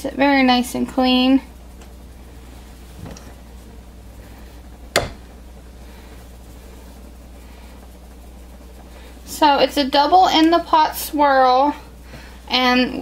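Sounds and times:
wire cutter slicing soap: 0:05.0 - 0:05.2.

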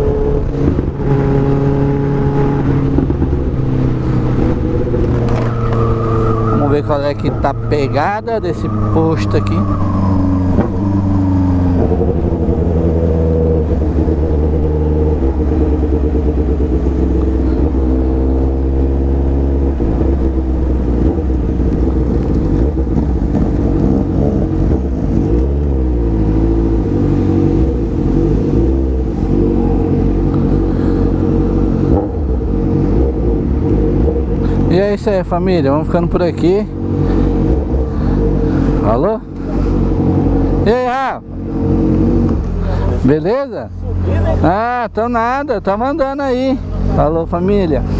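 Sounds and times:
motorcycle engine running: 0:10.0 - 0:35.3.

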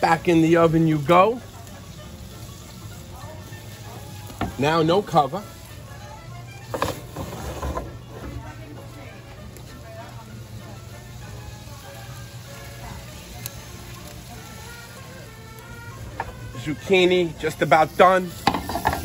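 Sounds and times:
faint voices: 0:00.0 - 0:19.0.

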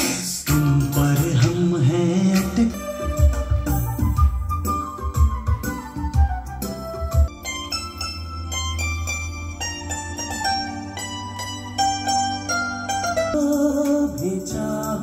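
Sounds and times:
music through loudspeakers: 0:00.0 - 0:15.0.

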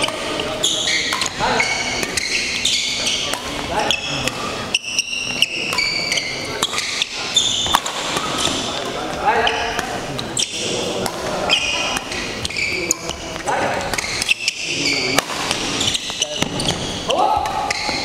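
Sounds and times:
shoes squeaking on floor: 0:00.0 - 0:10.7, 0:11.4 - 0:18.0
rackets striking shuttlecock: 0:00.0 - 0:18.0.

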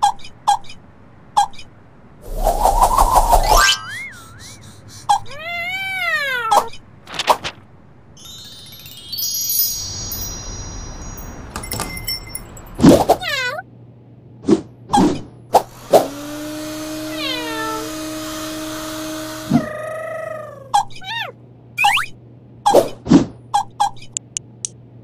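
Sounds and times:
cartoon cat meowing: 0:05.2 - 0:06.7, 0:13.2 - 0:13.6, 0:17.0 - 0:17.9, 0:19.5 - 0:21.4
high sparkly chime: 0:08.2 - 0:12.8
hiss: 0:15.6 - 0:16.4.

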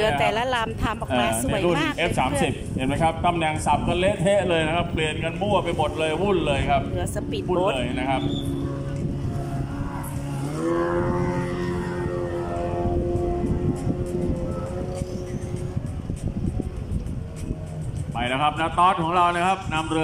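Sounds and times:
engine revving: 0:05.6 - 0:20.0.

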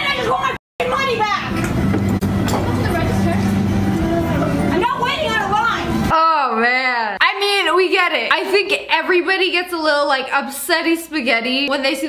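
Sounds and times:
voices speaking: 0:00.0 - 0:12.0
low hum: 0:00.8 - 0:06.1.

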